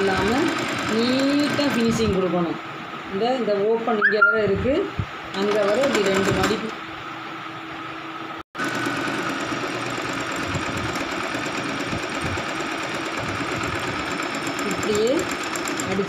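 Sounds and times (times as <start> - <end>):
sewing machine stitching: 0.0 - 2.2, 5.4 - 6.7, 8.6 - 16.0.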